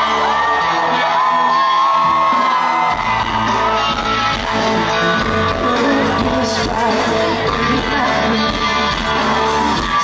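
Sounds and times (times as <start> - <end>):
crowd whooping and cheering: 0.0 - 10.0
live rock band: 0.0 - 10.0.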